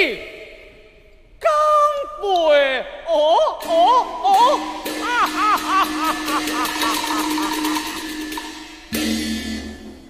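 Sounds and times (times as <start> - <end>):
fast percussion clicks: 4.8 - 9.0.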